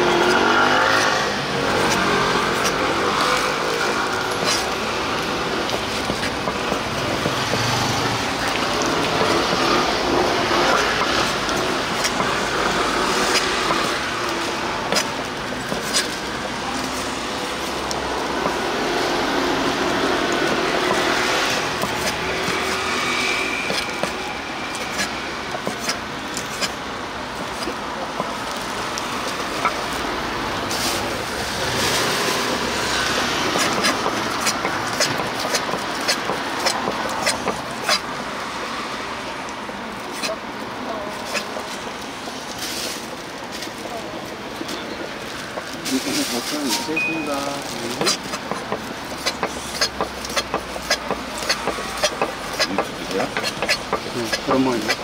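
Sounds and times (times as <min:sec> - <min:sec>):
street traffic: 0:00.0 - 0:55.0.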